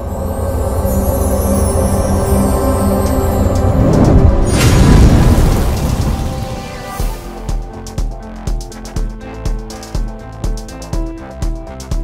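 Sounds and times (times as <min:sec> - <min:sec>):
deep rumble: 0:00.0 - 0:07.4.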